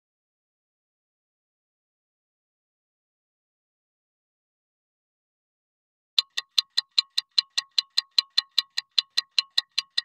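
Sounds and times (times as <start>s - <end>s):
fast metallic ticking: 6.2s - 10.0s.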